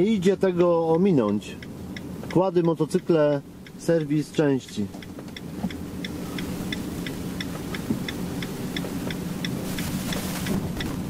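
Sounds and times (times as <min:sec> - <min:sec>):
engine and road hum: 0:00.0 - 0:11.0
turn signal clicking: 0:00.0 - 0:11.0.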